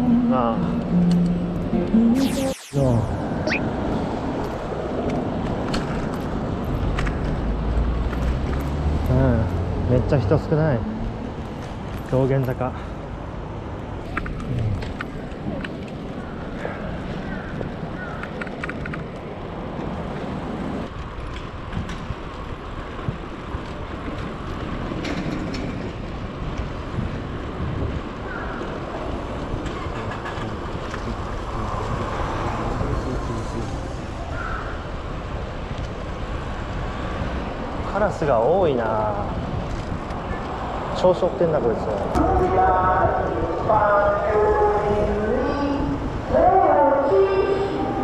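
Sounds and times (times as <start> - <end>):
street traffic: 0.0 - 48.0
wind buffeting microphone: 14.0 - 33.4, 42.0 - 48.0.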